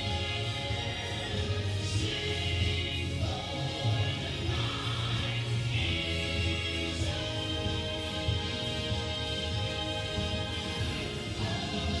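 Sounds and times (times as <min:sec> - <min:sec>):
group of voices singing: 0:00.0 - 0:12.0
instrumental accompaniment with bass: 0:00.0 - 0:12.0.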